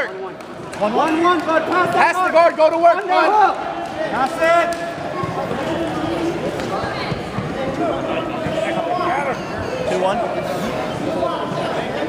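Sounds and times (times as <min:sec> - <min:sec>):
voices talking and calling out: 0:00.0 - 0:12.0.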